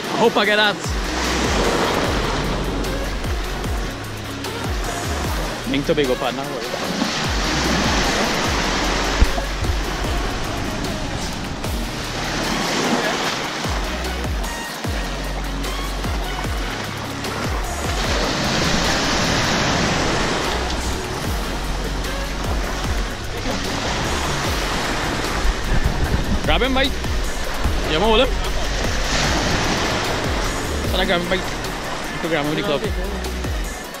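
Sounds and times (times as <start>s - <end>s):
surf breaking on beach: 0.0s - 4.0s, 4.7s - 14.8s, 16.5s - 34.0s
background music with low bass: 0.0s - 34.0s.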